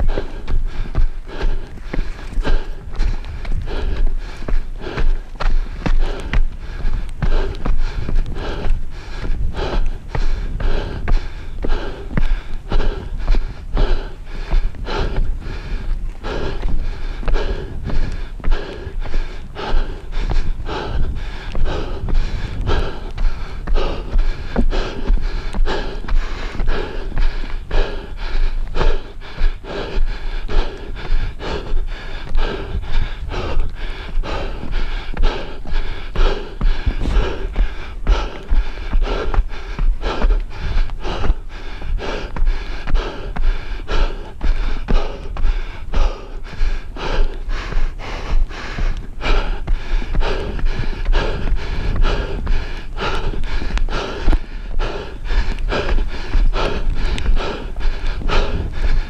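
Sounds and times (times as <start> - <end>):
fast footsteps climbing stairs: 0.0 - 59.0
hard breathing: 0.0 - 59.0.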